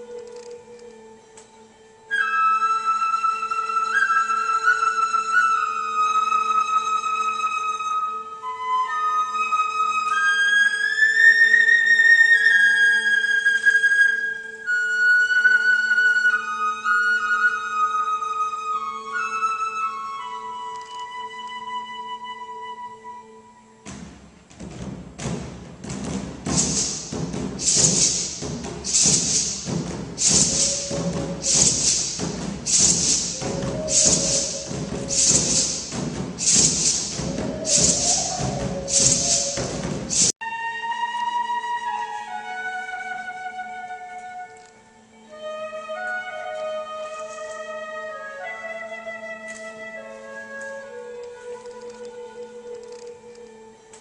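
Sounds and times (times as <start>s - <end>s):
flute melody over low drone: 0.0s - 23.8s, 26.6s - 54.0s
percussion-heavy music with shaker beat: 23.9s - 40.4s.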